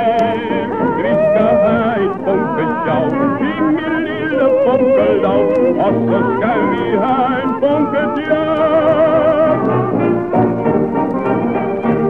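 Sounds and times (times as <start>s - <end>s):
old muffled song recording: 0.0s - 12.0s.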